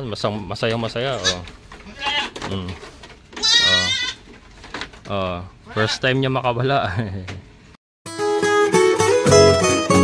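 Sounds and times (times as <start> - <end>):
goat bleating: 1.0 - 2.6, 3.3 - 4.2, 5.6 - 6.0.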